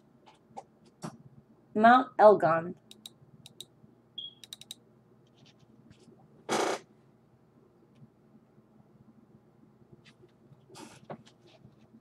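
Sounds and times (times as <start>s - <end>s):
computer mouse clicks: 2.9s - 3.7s, 4.4s - 4.8s.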